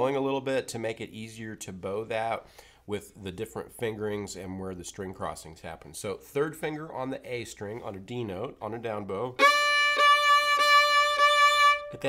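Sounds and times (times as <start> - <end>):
fiddle bowing a held note: 9.4 - 12.0.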